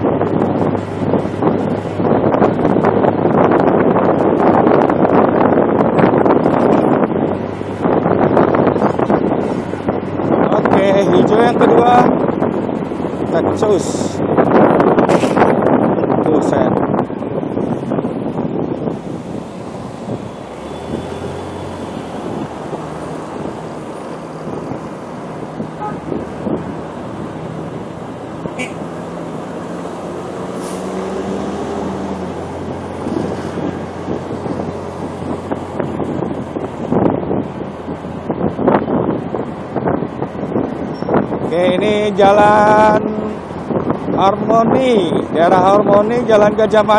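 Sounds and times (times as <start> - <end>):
wind buffeting microphone: 0.0 - 46.9.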